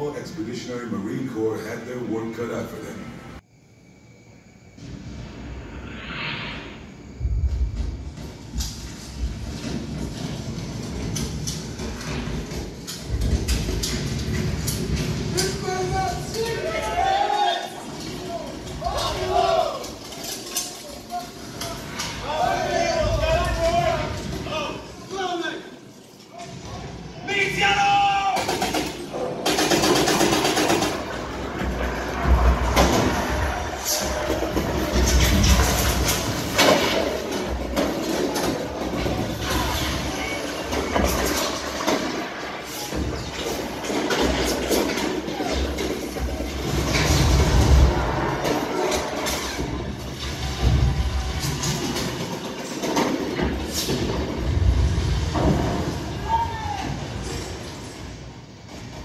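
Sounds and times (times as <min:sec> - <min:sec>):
deep rumbling booms: 0:06.6 - 0:09.5, 0:46.2 - 0:51.6, 0:54.0 - 0:57.4.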